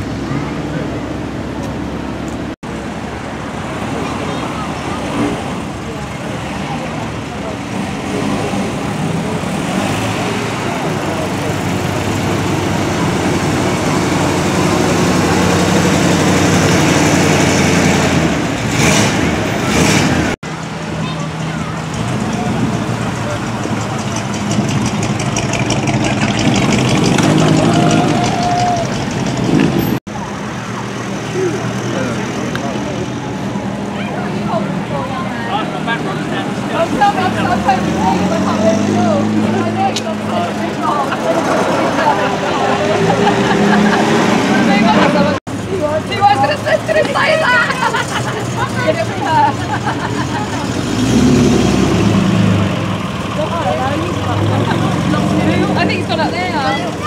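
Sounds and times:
cars driving slowly past: 0.0s - 57.0s.

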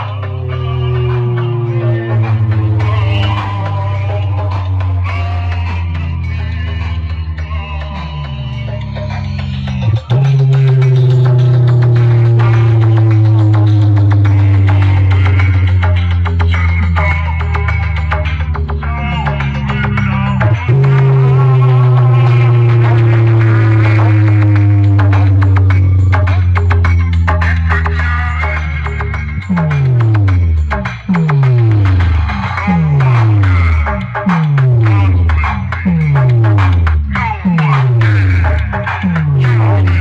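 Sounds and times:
loud music over loudspeakers: 0.0s - 40.0s.

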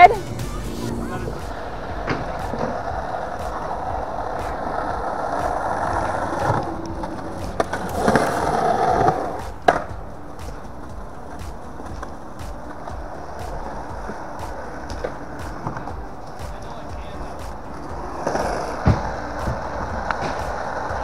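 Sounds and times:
skateboard wheels rolling on concrete: 0.0s - 21.0s
skateboard clacks: 1.4s - 21.0s.

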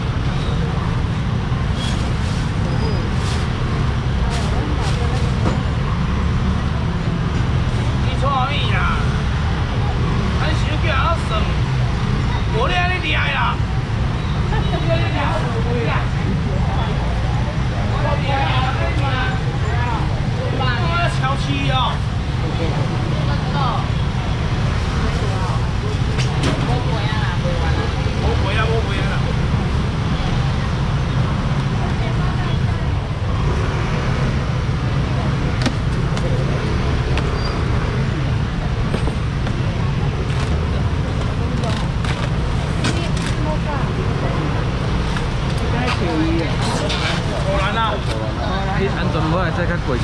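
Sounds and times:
indistinct voices: 0.0s - 50.0s.

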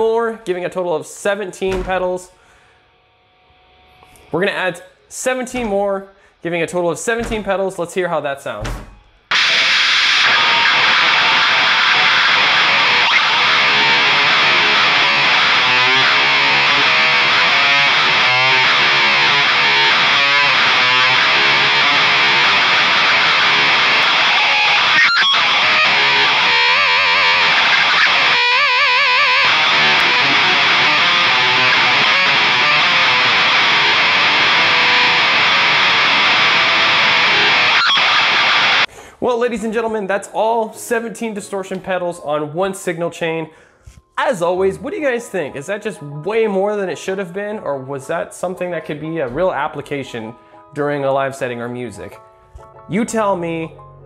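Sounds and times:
heavily distorted electric guitar: 8.6s - 38.9s.

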